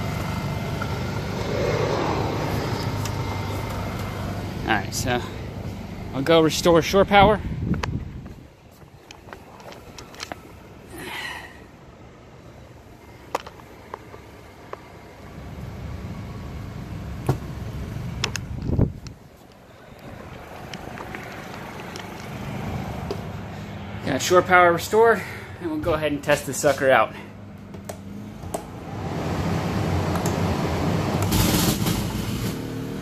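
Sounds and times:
steady low hum: 0:00.6 - 0:06.2.

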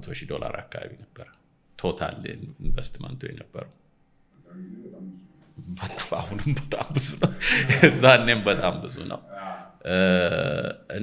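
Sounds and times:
man holding a drawn-out vowel: 0:04.5 - 0:05.3
man murmuring: 0:04.5 - 0:11.0.

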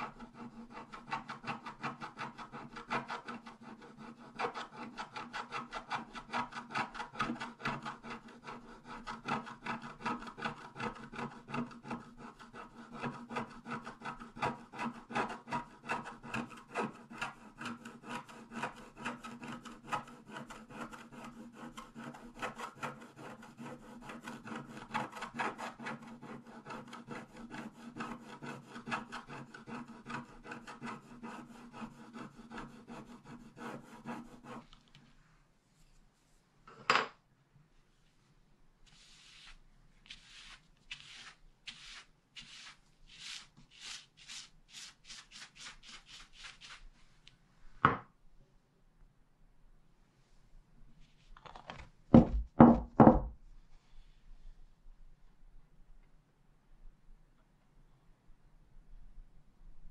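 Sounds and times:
wooden stick scraping card: 0:38.9 - 0:46.9.

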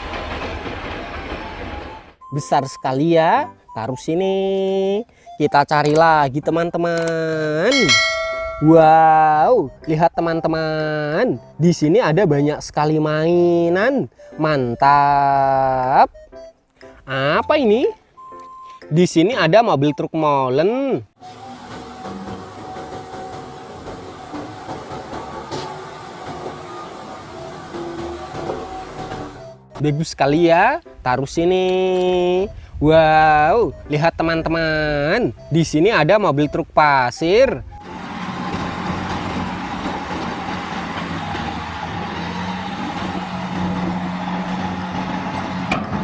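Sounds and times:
diesel truck engine running: 0:21.2 - 0:29.8, 0:37.6 - 0:46.0.

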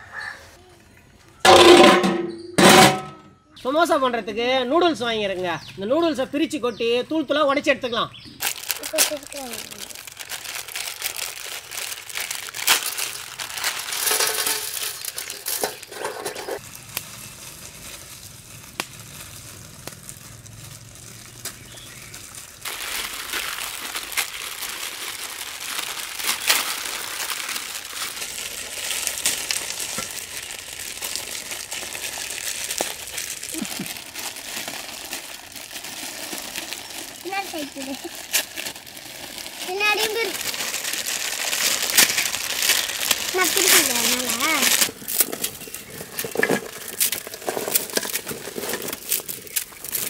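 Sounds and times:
plastic wrappers crinkling: 0:08.3 - 0:50.0.

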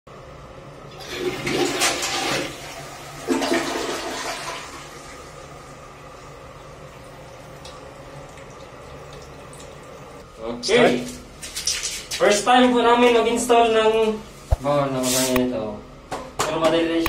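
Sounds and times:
toilet flushing: 0:00.9 - 0:10.2.

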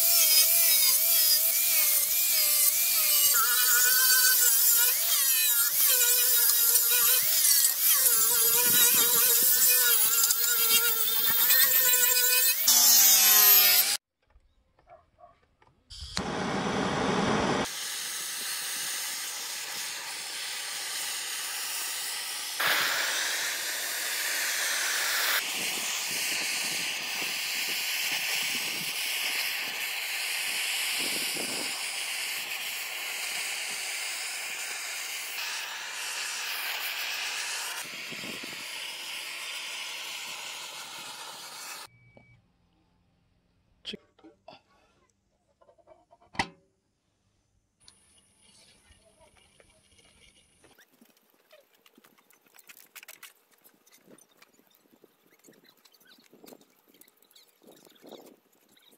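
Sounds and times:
angle grinder sanding wood: 0:00.0 - 0:14.0, 0:17.6 - 0:41.9
loud burst of noise: 0:15.9 - 0:41.8
blowtorch hissing: 0:15.9 - 0:41.9.

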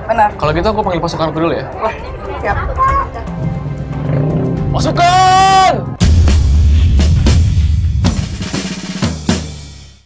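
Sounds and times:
drum kit hits: 0:06.0 - 0:10.0.

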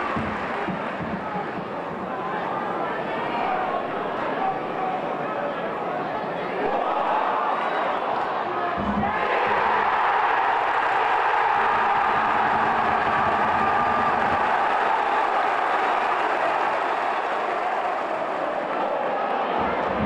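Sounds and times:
stadium crowd cheering: 0:00.0 - 0:20.0.

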